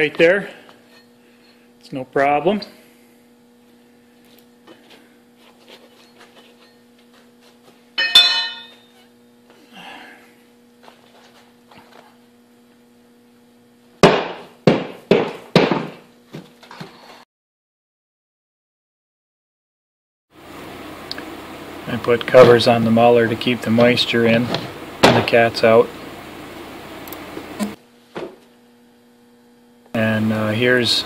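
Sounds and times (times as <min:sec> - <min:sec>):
metallic clink: 0:08.0 - 0:08.9.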